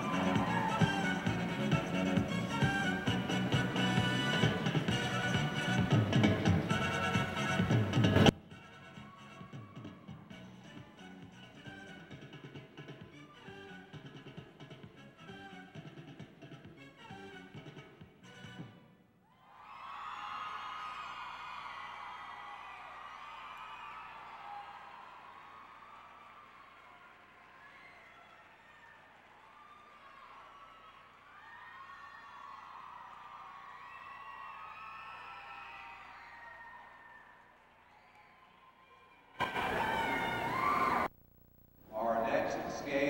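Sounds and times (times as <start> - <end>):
audience cheering with whoops: 0.0 - 1.8, 9.0 - 10.4, 19.3 - 41.1
audience applauding: 0.0 - 5.9, 19.6 - 38.5, 39.4 - 41.1
skating program music: 0.0 - 18.9.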